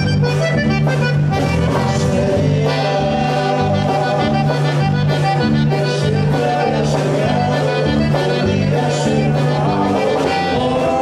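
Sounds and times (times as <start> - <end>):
button accordion with band: 0.0 - 11.0.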